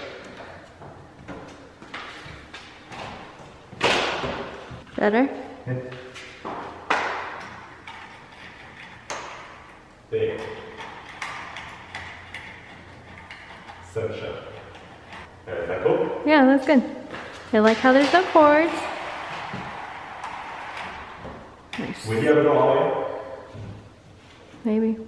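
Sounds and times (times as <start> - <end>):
window blind slats clattering: 17.6 - 22.0.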